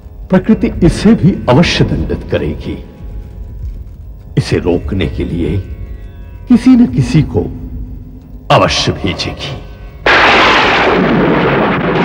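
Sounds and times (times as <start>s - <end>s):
thunder crack and roll: 10.0s - 12.0s.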